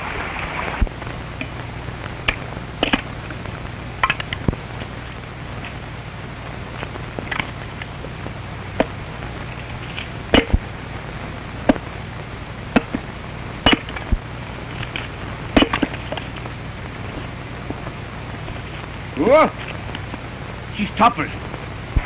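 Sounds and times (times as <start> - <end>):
film soundtrack hum and hiss: 0.0 - 22.0
axe chopping firewood: 12.7 - 13.0, 13.6 - 14.0, 15.6 - 16.0.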